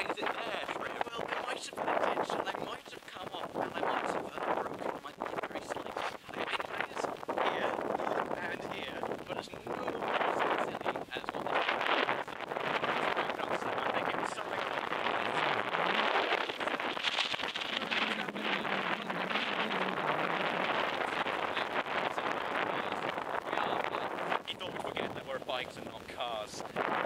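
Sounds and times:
people talking: 0.0s - 26.9s
wind buffeting microphone: 0.0s - 27.0s.

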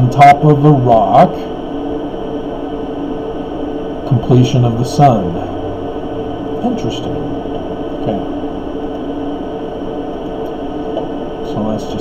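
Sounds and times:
noise haze: 0.0s - 12.0s
steady low drone: 0.0s - 12.0s.

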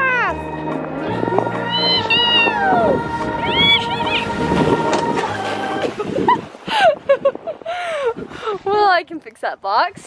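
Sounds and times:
background music: 0.0s - 6.2s.

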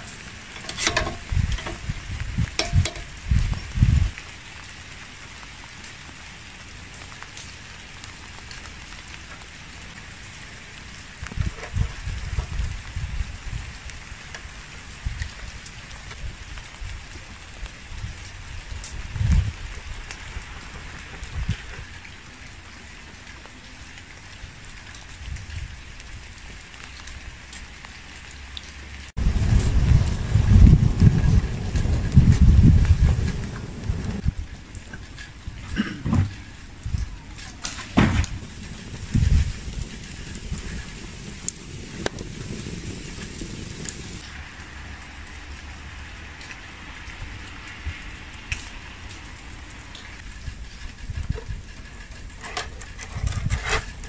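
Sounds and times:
meat sizzling over charcoal: 0.0s - 54.0s.

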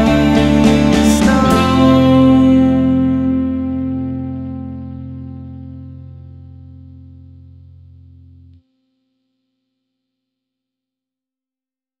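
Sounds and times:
electric guitar chord: 0.0s - 8.6s.

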